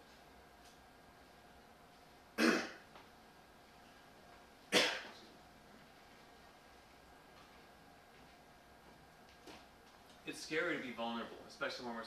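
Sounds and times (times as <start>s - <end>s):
sharp cough: 2.4s - 2.8s, 4.7s - 5.2s.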